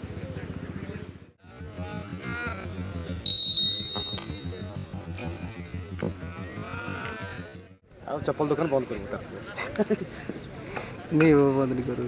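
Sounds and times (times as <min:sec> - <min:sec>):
whistle blast: 0:03.1 - 0:05.5.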